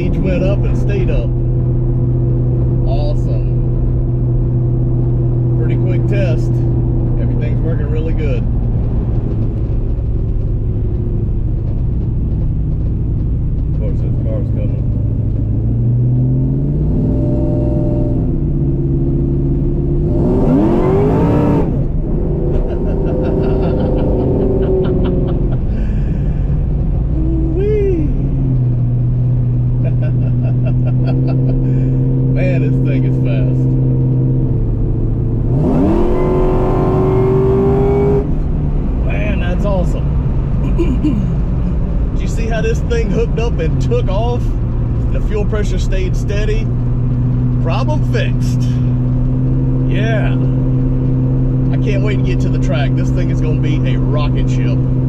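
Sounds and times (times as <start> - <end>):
car engine revving hard: 15.2 - 27.4, 29.5 - 40.8, 41.5 - 55.0.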